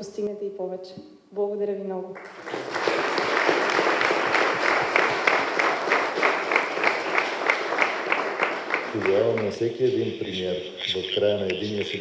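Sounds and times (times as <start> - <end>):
audience applauding: 2.2 - 12.0.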